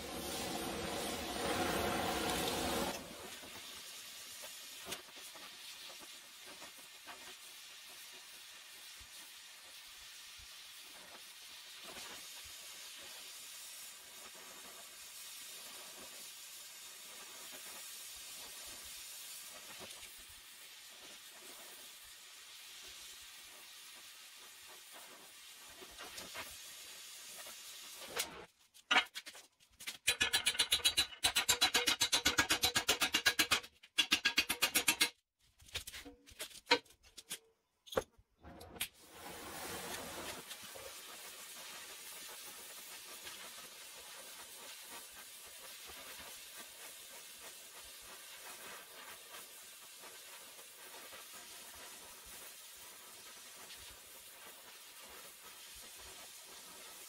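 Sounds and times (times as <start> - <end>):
torch hissing: 0.0 - 5.1.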